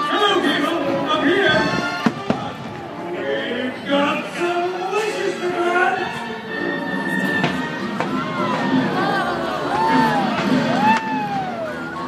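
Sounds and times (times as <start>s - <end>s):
firework bangs: 2.0s - 2.9s
soundtrack music: 2.7s - 12.0s.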